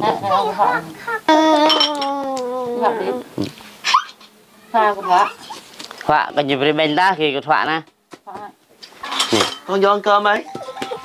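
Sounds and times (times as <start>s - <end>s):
spoons clinking against bowls: 1.6s - 2.1s, 9.0s - 9.7s.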